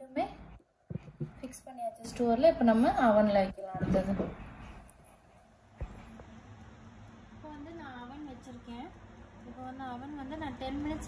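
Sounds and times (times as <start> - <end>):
electric oven humming: 0.0 - 11.0
woman speaking: 1.3 - 4.4.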